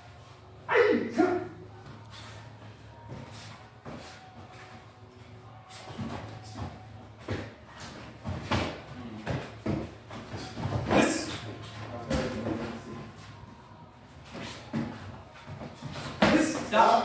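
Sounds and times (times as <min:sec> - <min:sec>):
padded punches and kicks thudding: 0:05.7 - 0:12.8, 0:14.2 - 0:17.0.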